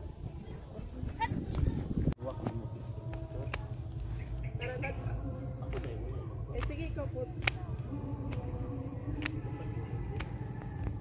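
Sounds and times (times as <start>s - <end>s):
faint indistinct voices: 0.0s - 11.0s
low rumble on microphone: 0.0s - 11.0s.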